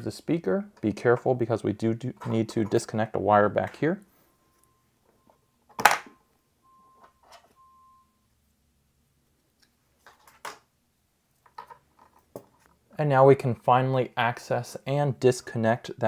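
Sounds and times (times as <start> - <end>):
faint high beeps: 4.0 - 8.4.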